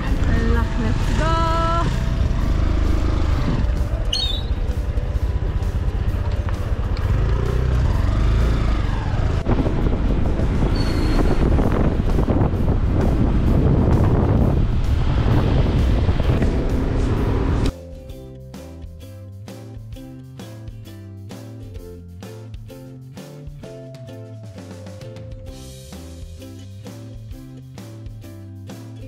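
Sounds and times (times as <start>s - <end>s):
motorbike engine and road noise: 0.0s - 18.0s
music: 0.0s - 29.0s
wind over microphone: 9.1s - 17.7s.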